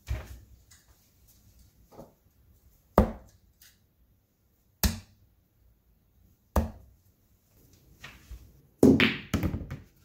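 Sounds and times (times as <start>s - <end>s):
darts thunking into dartboard: 3.0s - 3.3s.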